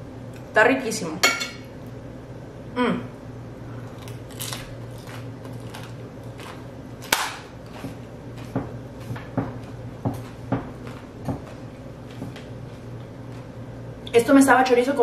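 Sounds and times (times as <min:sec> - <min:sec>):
crunchy chewing: 0:03.8 - 0:13.6.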